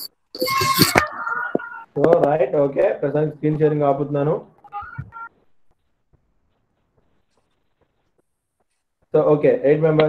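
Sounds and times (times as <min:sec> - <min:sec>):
short electronic beeps: 0:00.0 - 0:01.1.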